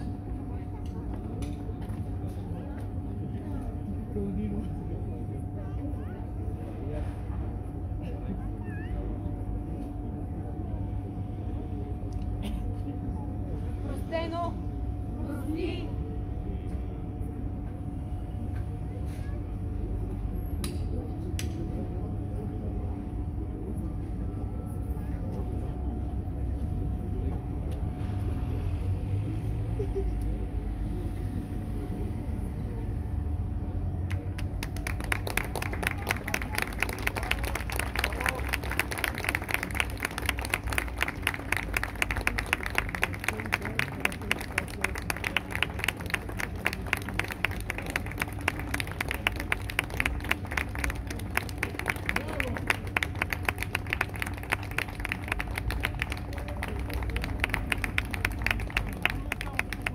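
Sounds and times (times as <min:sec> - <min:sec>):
audience applauding: 0:34.1 - 0:59.9.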